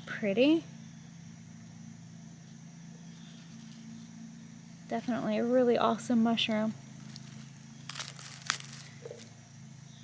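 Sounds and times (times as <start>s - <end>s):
dry leaf litter crackling: 3.3s - 9.4s.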